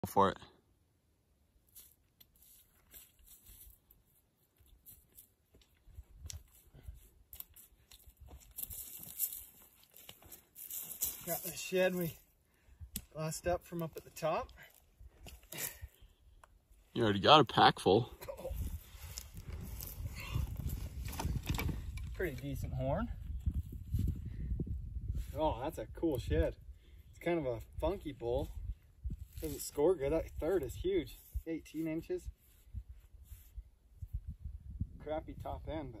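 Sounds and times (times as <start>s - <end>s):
footsteps on dry brush: 1.6s - 12.3s, 18.5s - 22.0s, 28.5s - 33.6s.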